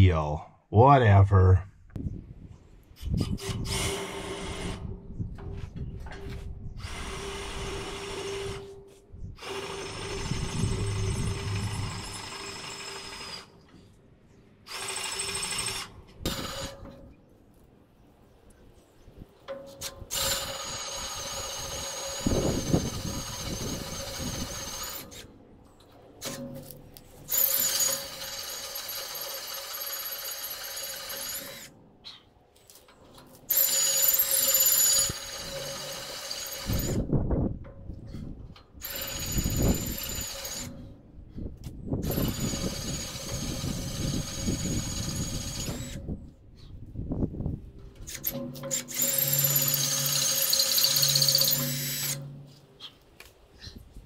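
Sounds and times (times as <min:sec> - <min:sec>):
power drill whining: 0:09.4 - 0:13.5, 0:20.1 - 0:25.2, 0:27.3 - 0:31.7, 0:33.5 - 0:37.0, 0:38.8 - 0:40.8, 0:42.0 - 0:46.1, 0:48.1 - 0:52.4.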